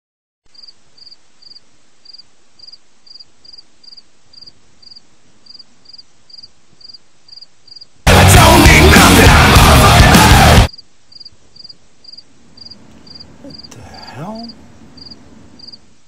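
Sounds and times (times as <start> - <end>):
cricket chirping: 0.5 - 8.0, 10.7 - 16.0.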